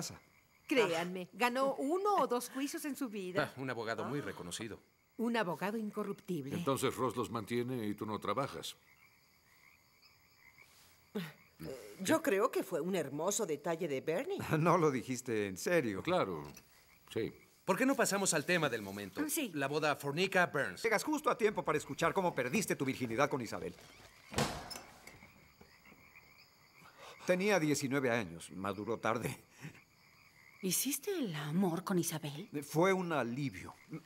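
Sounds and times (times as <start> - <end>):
frogs chirping: 0.0 - 34.0.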